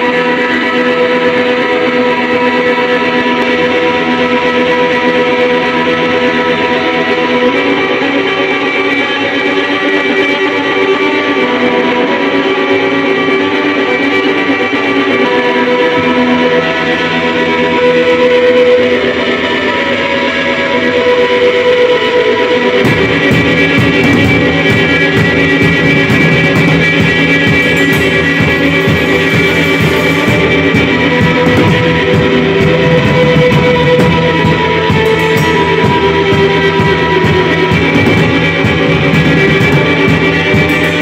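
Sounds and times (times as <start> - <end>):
live rock band: 0.0 - 41.0
loud electric guitar chords: 0.0 - 41.0.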